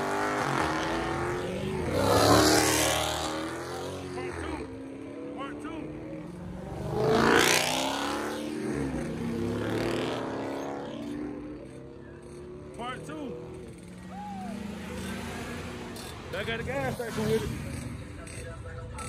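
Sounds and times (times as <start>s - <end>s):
cars revving past: 0.0s - 18.4s
bystanders' voices: 11.4s - 19.0s.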